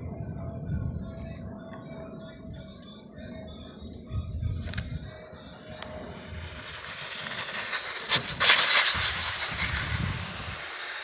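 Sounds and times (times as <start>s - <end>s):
rc car rushing past: 6.0s - 11.0s.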